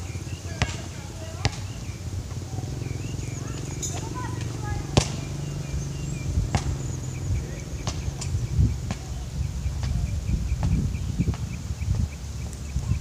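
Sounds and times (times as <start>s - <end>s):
basketball bouncing on hard court: 0.5s - 2.4s, 3.4s - 9.1s.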